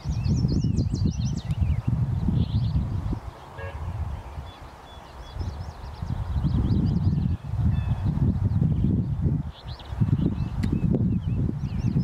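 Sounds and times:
birds calling faintly: 0.0 - 12.0
wind rumble on microphone: 0.0 - 12.0.

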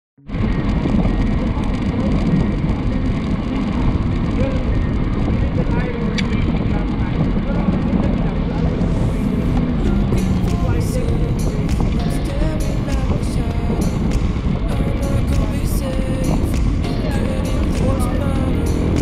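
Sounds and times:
wind rushing over microphone: 0.2 - 19.0.

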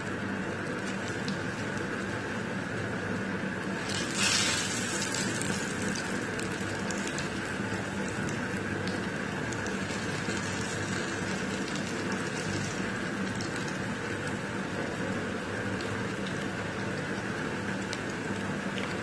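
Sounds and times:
crackles and pops of frying: 0.0 - 2.9, 3.6 - 19.0
hot oil sizzling: 3.6 - 19.0.

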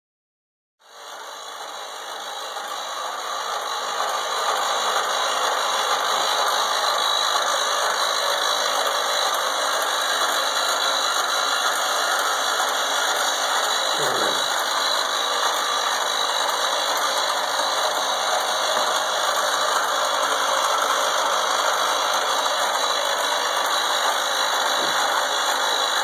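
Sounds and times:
rotator motors running: 0.8 - 26.0.

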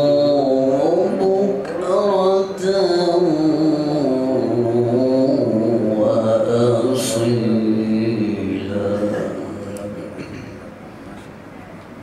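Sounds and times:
man reciting melodically: 0.0 - 10.3.

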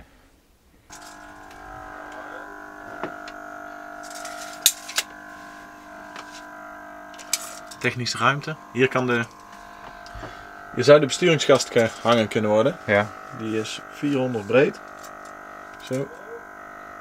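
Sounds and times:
steady machine hum: 0.8 - 17.0.

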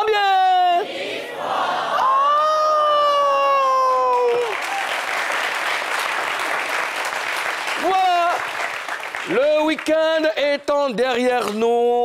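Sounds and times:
audience applause: 3.8 - 10.1.

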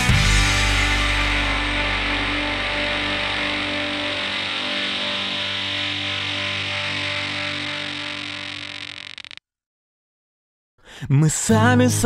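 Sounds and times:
distorted electric guitar chord: 0.0 - 9.4.

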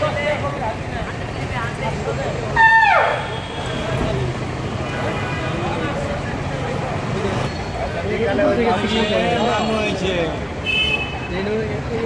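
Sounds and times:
people talking: 3.6 - 10.5.

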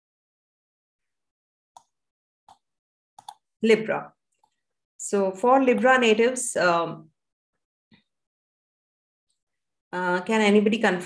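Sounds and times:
computer mouse clicks: 1.8 - 3.5, 4.3 - 4.6.

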